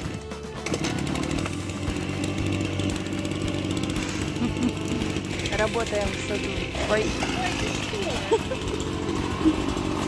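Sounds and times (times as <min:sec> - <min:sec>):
brush cutter engine running: 0:00.0 - 0:10.0.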